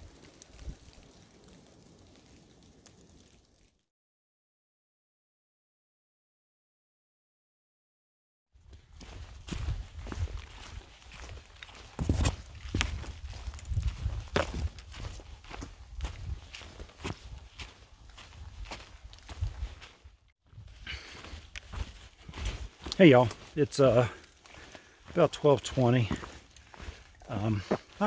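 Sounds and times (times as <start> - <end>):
footsteps crunching on leaves: 8.7 - 28.0.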